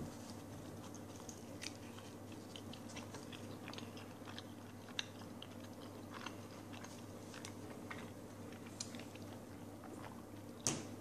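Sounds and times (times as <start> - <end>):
man chewing pizza: 0.0 - 10.6.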